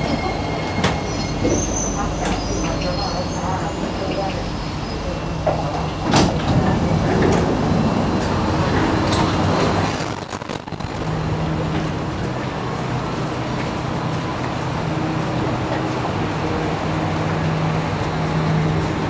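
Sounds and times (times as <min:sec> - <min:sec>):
train doors sliding open: 0:00.0 - 0:10.0
train humming at platform: 0:00.0 - 0:19.0.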